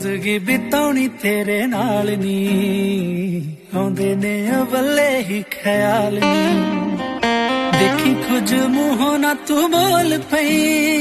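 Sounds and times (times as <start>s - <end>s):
backing music: 6.2s - 11.0s.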